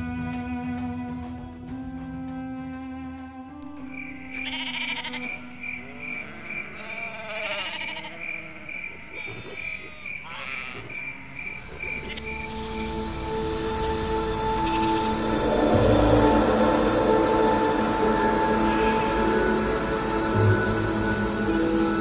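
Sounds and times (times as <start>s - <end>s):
sustained music notes: 0.0s - 6.4s, 11.9s - 22.0s
crickets chirping: 3.6s - 22.0s
swirling sweeps: 13.0s - 22.0s.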